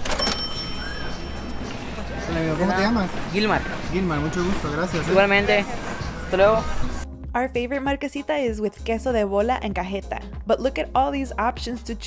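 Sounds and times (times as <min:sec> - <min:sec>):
cash register bell ding: 0:00.0 - 0:01.7.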